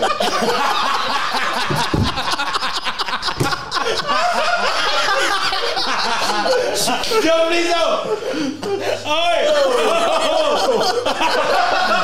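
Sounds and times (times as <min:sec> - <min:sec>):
men laughing: 0:00.0 - 0:12.0
men talking: 0:03.4 - 0:12.0.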